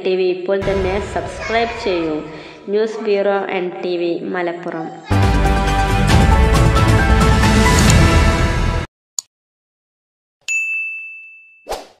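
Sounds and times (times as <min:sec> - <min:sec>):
bright notification bell ding: 0:10.5 - 0:11.7.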